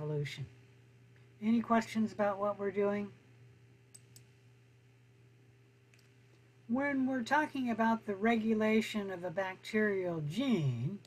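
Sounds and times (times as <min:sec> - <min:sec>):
low steady hum: 0:00.0 - 0:11.0
faint computer mouse clicks: 0:03.9 - 0:04.4, 0:05.9 - 0:06.4.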